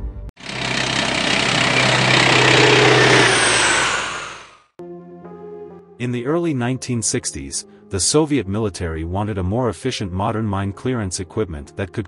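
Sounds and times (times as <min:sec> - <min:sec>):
loud engine roar: 0:00.4 - 0:04.7.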